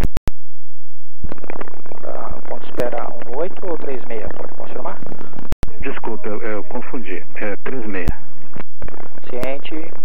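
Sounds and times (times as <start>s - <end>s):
crackling radio hiss: 1.2s - 10.0s
radio clicks: 8.0s - 9.6s.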